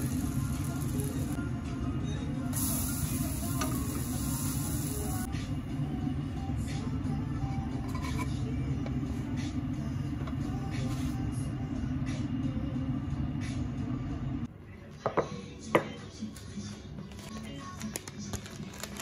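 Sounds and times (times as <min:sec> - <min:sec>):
kitchen rumble: 0:07.4 - 0:11.2.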